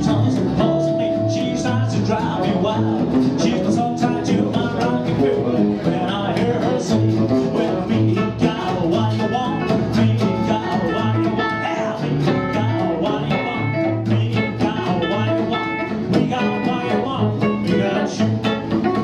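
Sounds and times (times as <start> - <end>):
acoustic rhythm guitar: 0.0 - 19.0
double bass: 0.0 - 19.0
electric lead guitar: 0.0 - 19.0.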